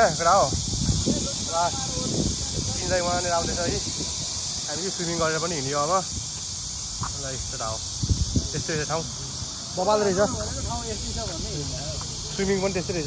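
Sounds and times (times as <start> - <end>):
high-pitched insect drone: 0.0 - 13.0
men talking: 0.0 - 13.0.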